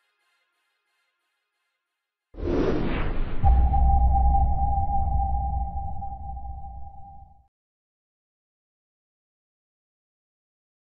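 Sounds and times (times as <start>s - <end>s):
whoosh: 2.4s - 7.4s
deep boom: 2.7s - 7.4s
steady ringing tone: 3.4s - 7.4s.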